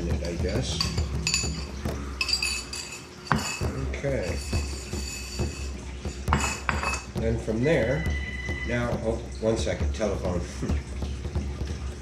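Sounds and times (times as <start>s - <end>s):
spoon clinking against ceramic bowl: 0.0s - 7.2s.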